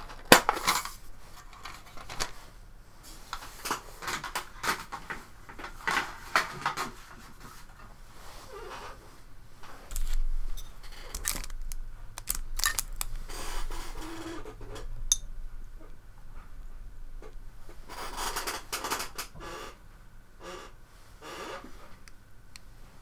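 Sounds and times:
paintbrushes clicking and knocking: 11.0s - 13.2s.

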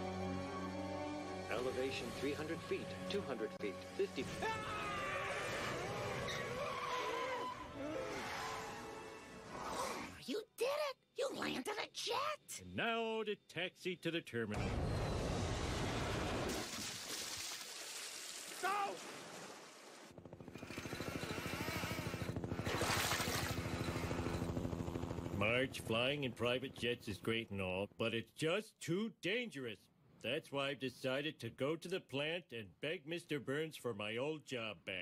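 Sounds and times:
background music: 0.0s - 9.8s
helicopter rotor chopping: 20.1s - 27.2s.

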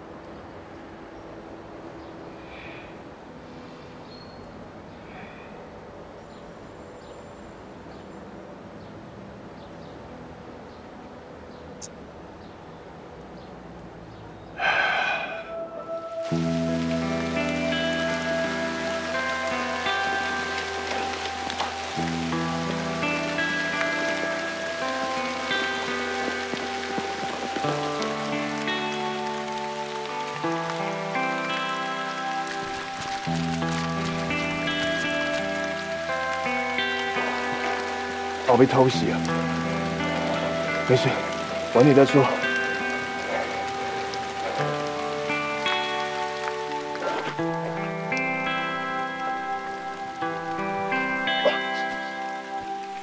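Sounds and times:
heavy rain falling: 0.0s - 53.0s
slow background music: 0.0s - 53.0s.

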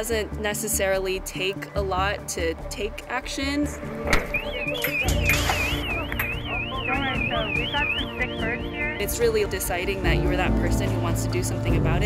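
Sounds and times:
warbling electronic alarm: 4.3s - 9.2s
people's voices: 4.4s - 12.0s.

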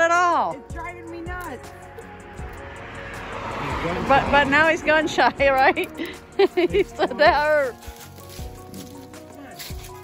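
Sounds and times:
car driving past: 1.6s - 6.5s.

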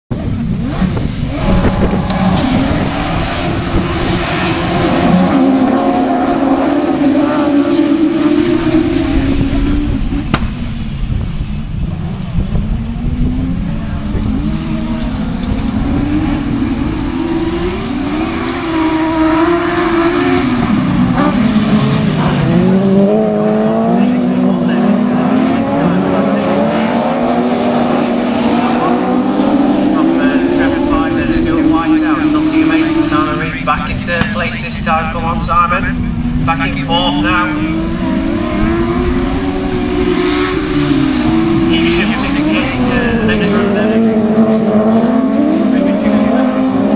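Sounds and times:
racing buggy engines revving: 0.1s - 46.9s.

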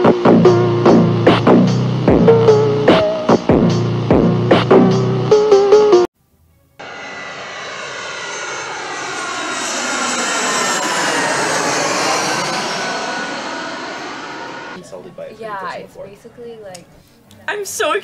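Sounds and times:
jet airliner flying overhead: 6.7s - 16.6s.

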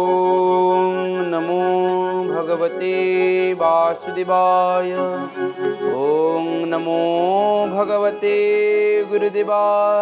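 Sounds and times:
devotional background music: 0.0s - 10.0s.

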